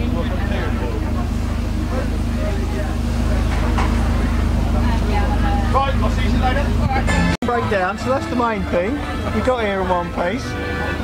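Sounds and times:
diesel engine idling: 0.0 - 11.0
voices in background: 0.0 - 11.0.

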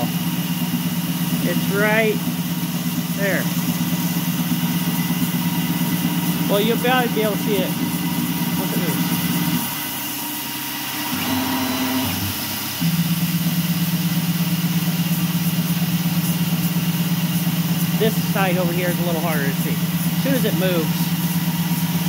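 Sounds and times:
mill cutting metal: 0.0 - 13.4, 15.1 - 22.0
machine head whirring: 2.9 - 13.0.

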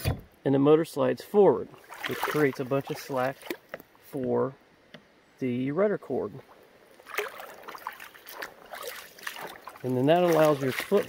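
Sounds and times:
water lapping: 1.7 - 3.8, 6.4 - 11.0.

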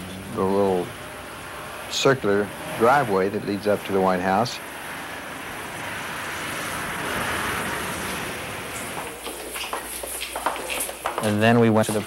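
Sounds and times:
car driving slowly: 0.0 - 12.0.

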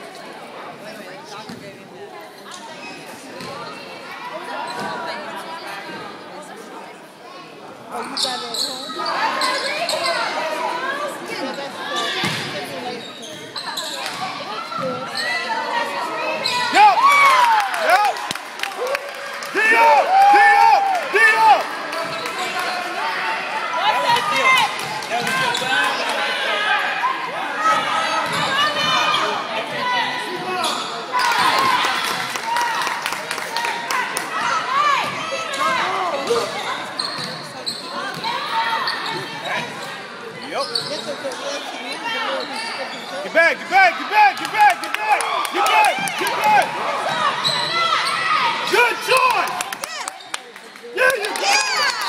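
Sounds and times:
voices of players and spectators: 0.0 - 52.0
sneakers squeaking: 1.3 - 1.8, 2.4 - 3.8, 4.6 - 5.1, 8.0 - 10.4, 11.4 - 15.7, 16.3 - 16.8, 27.7 - 29.2, 30.6 - 31.4, 35.0 - 43.4, 47.0 - 48.7.

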